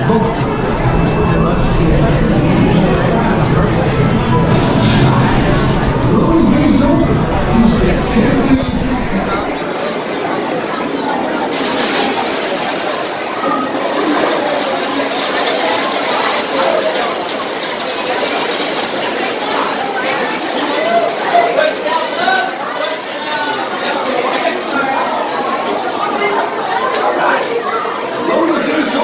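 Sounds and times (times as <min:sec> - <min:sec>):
crowd chatter: 0:00.0 - 0:29.0.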